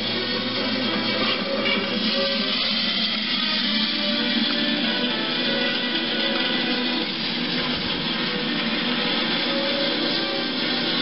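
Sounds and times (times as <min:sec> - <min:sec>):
film soundtrack music through television: 0:00.0 - 0:11.0.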